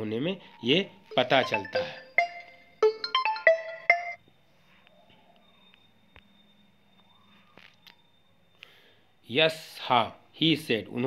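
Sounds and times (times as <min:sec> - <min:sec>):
phone ringtone chiming notes: 0:01.1 - 0:04.2.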